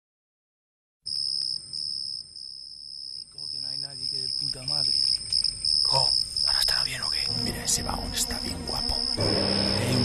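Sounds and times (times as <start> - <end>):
crickets trilling: 1.1 - 10.0
man speaking: 3.4 - 5.0, 5.9 - 10.0.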